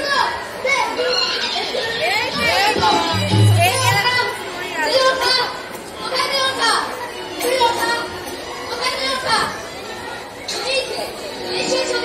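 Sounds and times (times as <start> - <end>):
actors speaking lines: 0.4 - 9.6.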